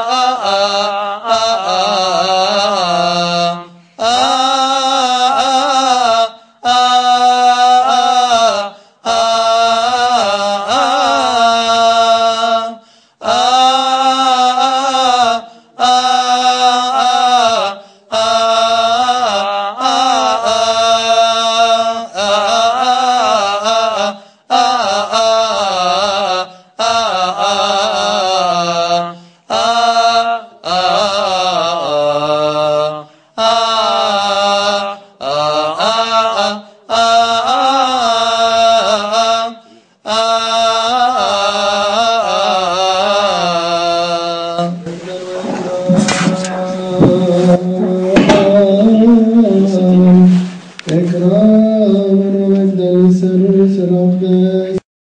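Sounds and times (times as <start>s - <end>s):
man chanting a hymn: 0.0s - 54.8s.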